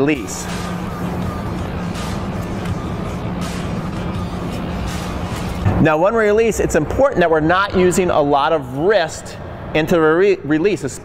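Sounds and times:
blowers humming and rushing: 0.0 - 11.0.

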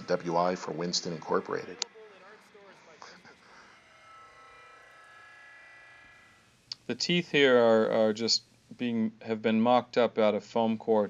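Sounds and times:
faint electric buzz: 0.0 - 11.0.

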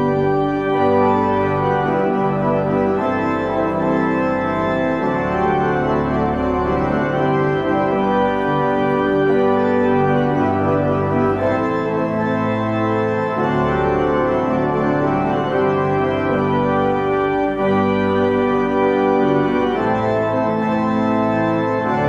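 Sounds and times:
organ sustained chords: 0.0 - 22.0.

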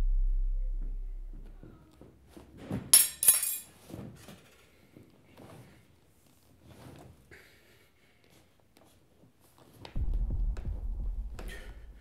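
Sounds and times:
glass clinks: 3.0 - 3.7.

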